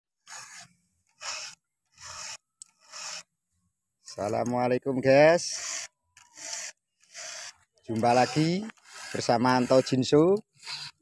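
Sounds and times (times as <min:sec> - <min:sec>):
file rasping on chainsaw chain: 0:00.2 - 0:03.3, 0:05.4 - 0:11.0.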